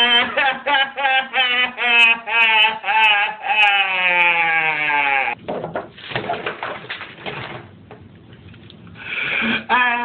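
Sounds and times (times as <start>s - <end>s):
clattering and rustling: 5.5s - 8.1s.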